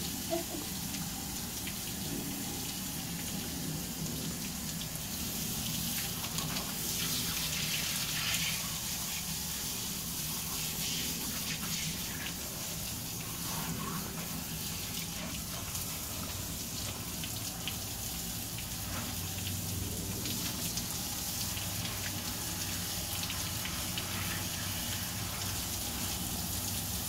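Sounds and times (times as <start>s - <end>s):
water spraying from a hose: 0.0s - 27.0s.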